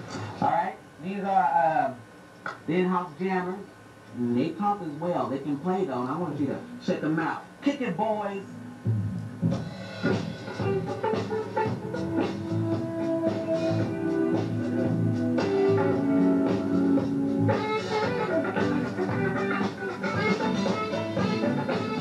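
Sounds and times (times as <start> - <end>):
live band instrumental groove: 8.8 - 22.0
saxophone long held notes: 10.6 - 22.0.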